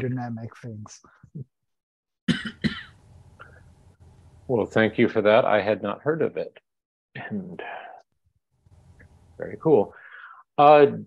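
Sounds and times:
person coughing: 2.3 - 3.0.

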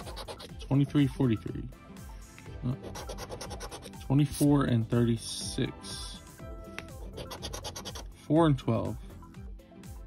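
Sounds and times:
scratching lottery ticket: 0.0 - 0.5, 2.8 - 4.0, 7.1 - 8.1
music playing: 0.0 - 10.0.

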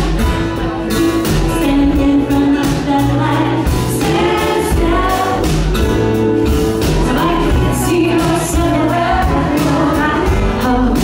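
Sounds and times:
acoustic guitar: 0.0 - 11.0
drums: 0.0 - 11.0
upright bass: 0.0 - 11.0
woman singing: 1.3 - 5.8, 6.9 - 11.0
harmony vocal: 1.4 - 11.0.

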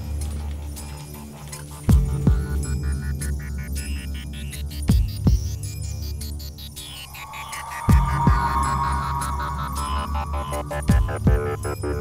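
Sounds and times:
steady low drone: 6.3 - 12.0
held high tone: 6.9 - 11.9.

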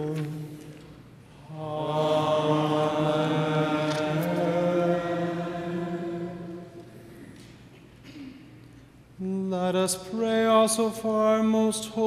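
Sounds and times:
voices chanting long note: 1.4 - 7.2.

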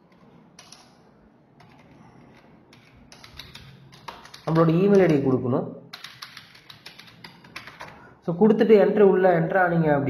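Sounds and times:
typing on computer keyboard: 0.1 - 1.0, 1.6 - 5.3, 5.9 - 8.0.

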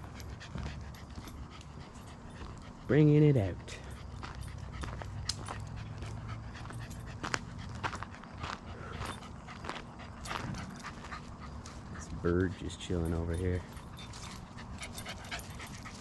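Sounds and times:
dog panting hard: 0.0 - 16.0.

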